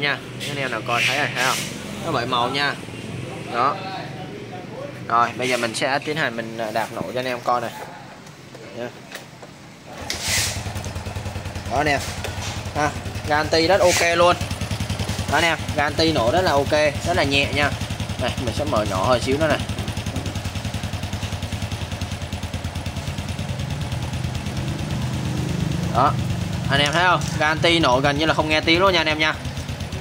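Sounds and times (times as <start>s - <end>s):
motorcycle engine idling: 9.9s - 30.0s
motorcycle engine kick-started: 9.9s - 30.0s.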